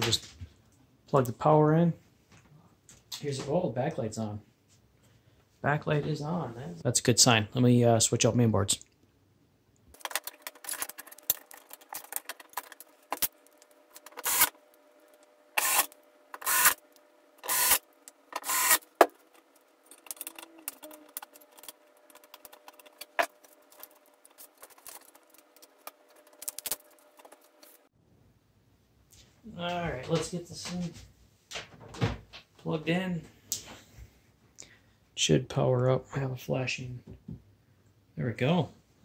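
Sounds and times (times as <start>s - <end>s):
short bursts of noise: 15.6s - 16.8s, 17.4s - 18.9s
cables and plastic plugs clicking: 19.9s - 27.4s.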